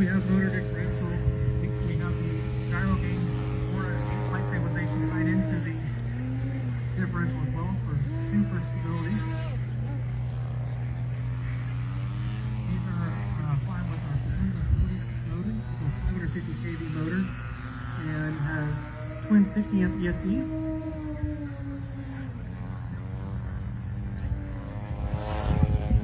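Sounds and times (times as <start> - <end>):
voices talking: 0.0 - 10.1, 12.4 - 23.3
steady low hum: 0.0 - 26.0.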